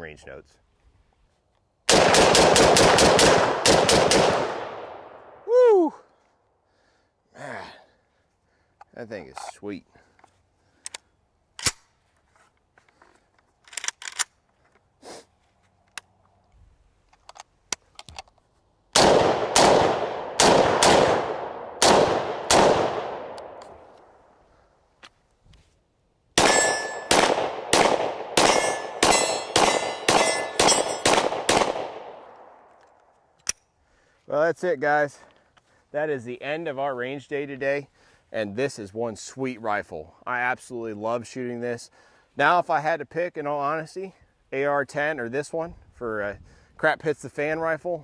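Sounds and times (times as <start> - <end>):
rapid gunshots: 1.9 - 4.8, 19.0 - 23.3, 26.4 - 32.1
gunshots echoing: 1.9 - 5.4, 19.0 - 23.6, 26.4 - 32.4
rifle magazine clicks and clacks: 13.6 - 14.8, 17.1 - 18.4.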